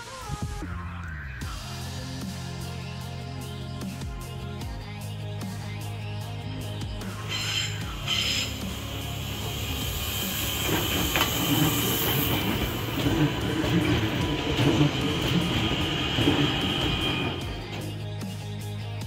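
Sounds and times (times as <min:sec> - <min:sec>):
train high whine: 0:07.1 - 0:18.2
train wheels clattering over rail joints: 0:09.4 - 0:18.1.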